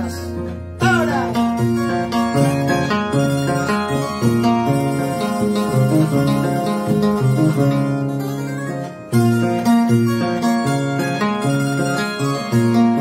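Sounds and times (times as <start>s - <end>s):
harp playing slow melody: 1.5s - 13.0s.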